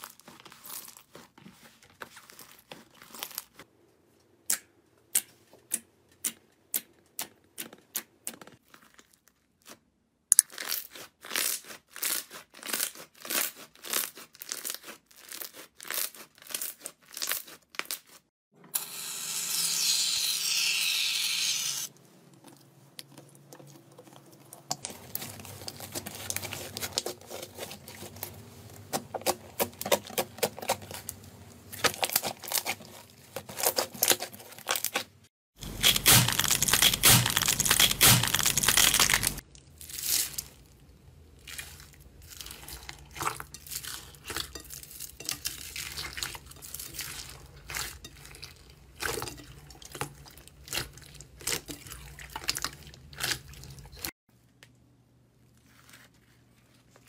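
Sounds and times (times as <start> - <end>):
slime squelching: 0.0 - 3.7, 21.9 - 54.1.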